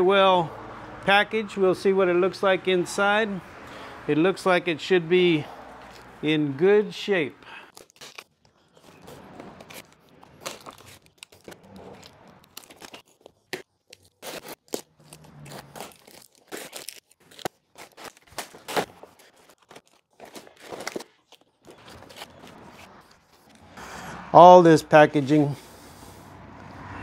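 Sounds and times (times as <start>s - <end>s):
cardboard box tearing: 7.7s - 23.0s.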